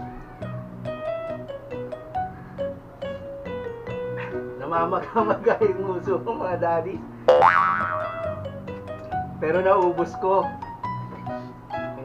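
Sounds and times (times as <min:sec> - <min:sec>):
cartoon rising pitch sweep: 0:07.3 - 0:08.3.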